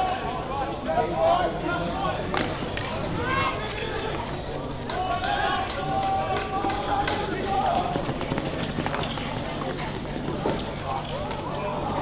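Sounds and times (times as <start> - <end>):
players shouting: 0.0 - 8.2
running footsteps on artificial turf: 0.0 - 12.0.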